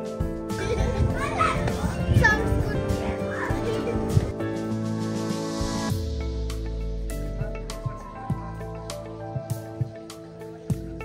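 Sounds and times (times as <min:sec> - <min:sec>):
background music: 0:00.0 - 0:11.0
young girl's voice: 0:00.6 - 0:04.3.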